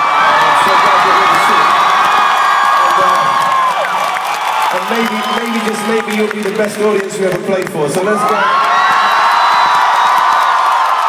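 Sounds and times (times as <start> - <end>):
stadium crowd cheering and screaming: 0.0 - 11.0.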